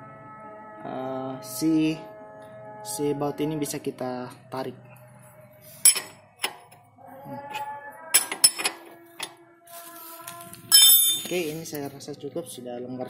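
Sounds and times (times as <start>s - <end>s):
spanner clinking on metal nut: 5.8s - 6.7s, 8.2s - 9.3s, 10.7s - 11.4s.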